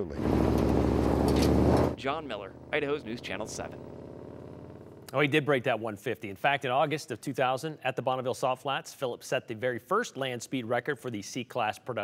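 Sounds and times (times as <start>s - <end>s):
pickup truck engine running: 0.1s - 5.2s.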